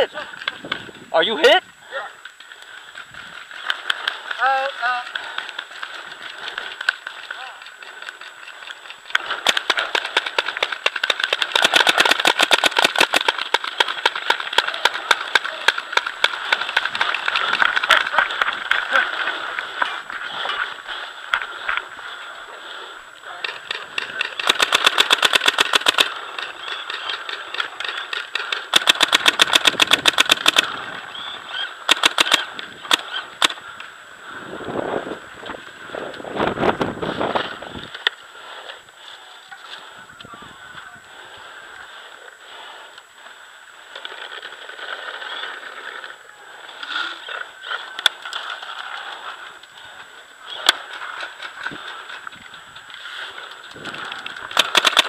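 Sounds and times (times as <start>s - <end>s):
paintball gun firing: 9.2s - 18.1s, 23.5s - 30.8s, 31.8s - 33.6s, 54.5s - 55.0s.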